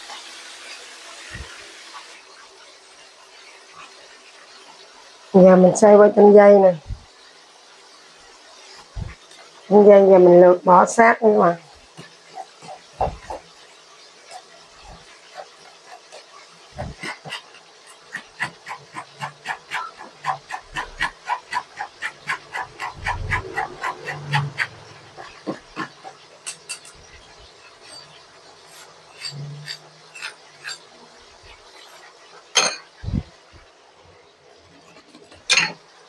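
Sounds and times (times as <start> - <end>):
metal spoon scraping mesh strainer: 27.7 - 30.9.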